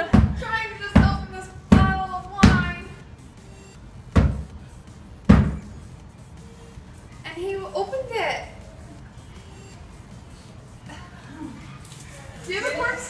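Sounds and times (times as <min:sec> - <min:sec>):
bottle in shoe thudding against wall: 0:05.3 - 0:05.6.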